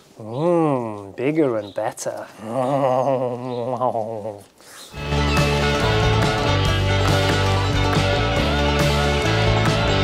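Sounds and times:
man's wavering wordless vocal: 2.3 - 4.6.

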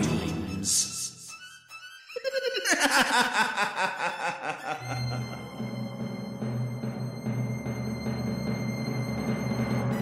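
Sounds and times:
low music: 0.0 - 10.0
man laughing: 2.1 - 5.5.

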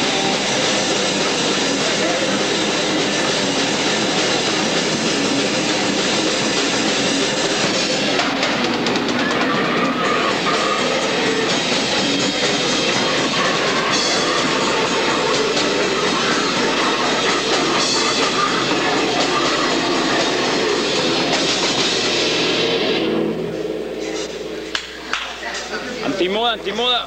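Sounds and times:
live heavy metal band playing: 0.0 - 24.8.

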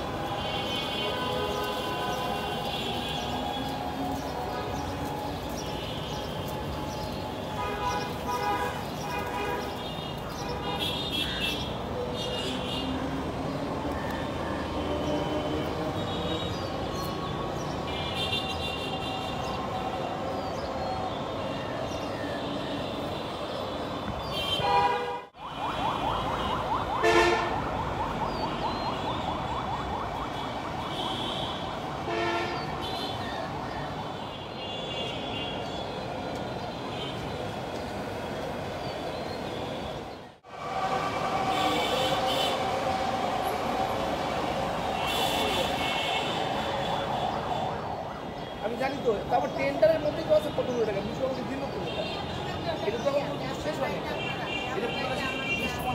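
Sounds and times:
urban traffic: 0.0 - 55.9.

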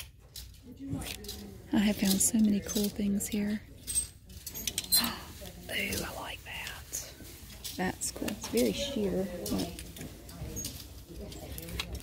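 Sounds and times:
plastic hangers clicking on rack: 0.0 - 5.2, 5.8 - 12.0
person whispering: 4.9 - 9.7.

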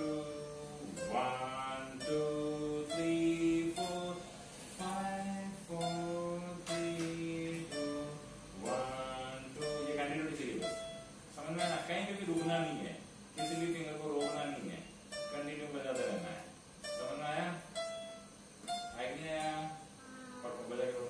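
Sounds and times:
person speaking: 0.0 - 17.8.

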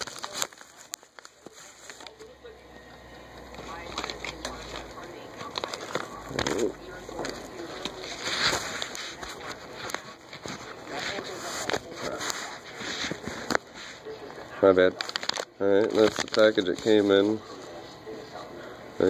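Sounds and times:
envelope crinkling and rustling: 0.0 - 2.3, 3.4 - 14.0, 14.8 - 17.4.

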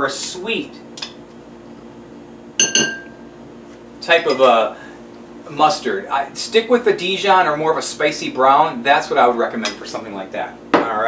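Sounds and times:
metal spoon clinking glass bowl: 2.6 - 3.2.

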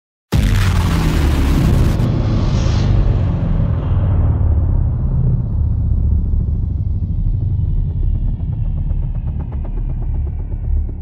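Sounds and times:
deep bass rumble: 0.3 - 11.0.

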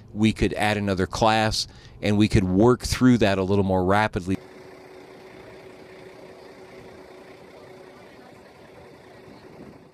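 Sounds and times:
faint steady hum: 0.0 - 9.9
truck engine idling: 4.2 - 9.9.

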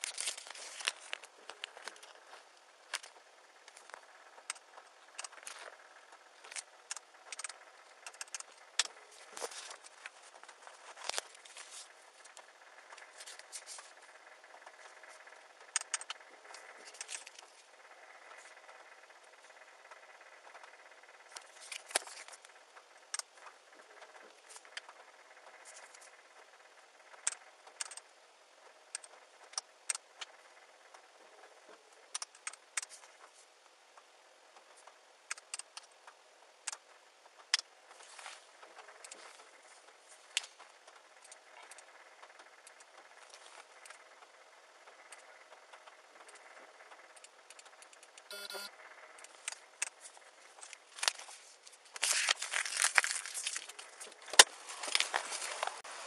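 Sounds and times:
sharp clicks and light rattles: 0.0 - 55.9
short electronic beep: 48.3 - 48.7.

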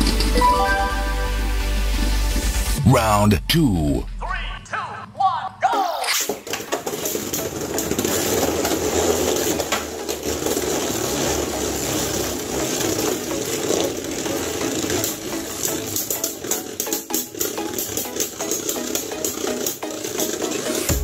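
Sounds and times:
spinning tops whirring and grinding: 6.0 - 21.0
spinning tops clacking together: 6.1 - 21.0.

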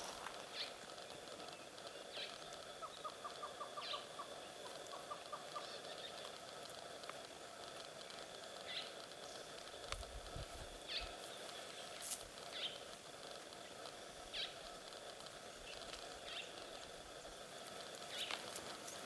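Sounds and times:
steady high hum: 0.0 - 19.0.

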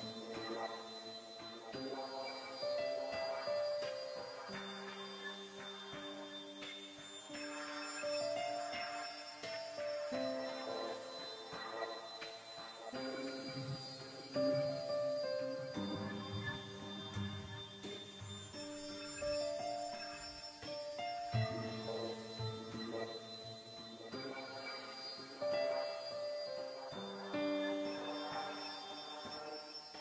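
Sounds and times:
sustained keyboard chords: 0.0 - 29.6.

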